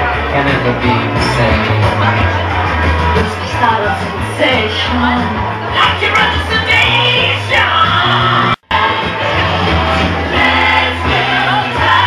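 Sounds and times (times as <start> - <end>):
drums: 0.0 - 12.0
keyboard: 0.0 - 12.0
people singing: 3.2 - 12.0.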